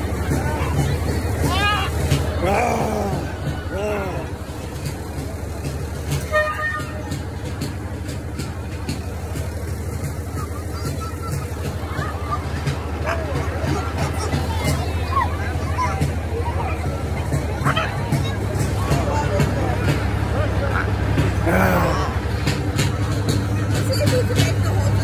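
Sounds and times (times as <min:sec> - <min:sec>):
crowd voices and calls: 0:00.0 - 0:25.0
vehicle engine rumble: 0:00.0 - 0:25.0.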